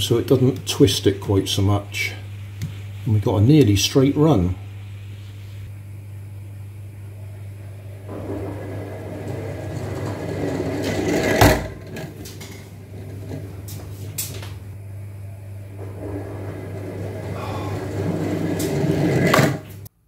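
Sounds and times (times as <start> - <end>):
toy car rolling on hard floor: 8.1 - 13.6, 15.8 - 19.7.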